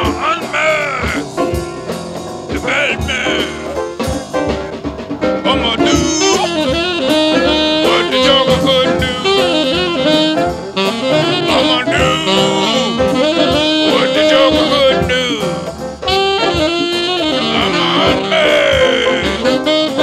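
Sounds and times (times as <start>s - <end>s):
brass: 0.0s - 20.0s
drums: 0.0s - 20.0s
saxophone lead line: 0.0s - 20.0s.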